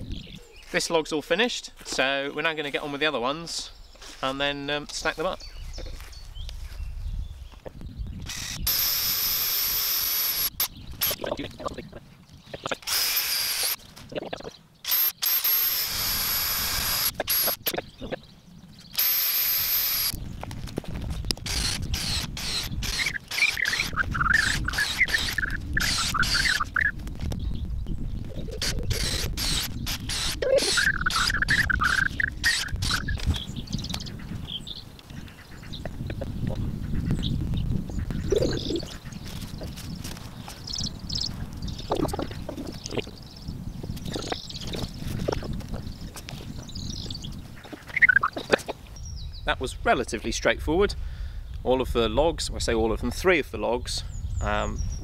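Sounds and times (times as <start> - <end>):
cordless drill boring into log: 8.2 - 11.2, 12.8 - 13.8, 14.8 - 17.8, 19.0 - 20.2, 21.4 - 26.7, 28.6 - 33.3
bird warbling: 21.5 - 27.0, 28.2 - 39.3, 41.7 - 43.2, 47.2 - 48.9.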